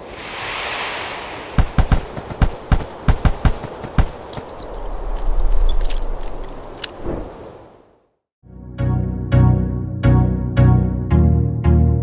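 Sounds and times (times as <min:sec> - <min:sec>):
sharp hits: 0:00.0 - 0:04.1
rush of noise: 0:00.0 - 0:04.2.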